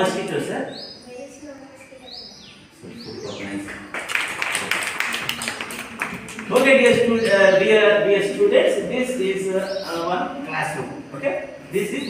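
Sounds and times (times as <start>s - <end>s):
children clapping: 3.6s - 6.9s.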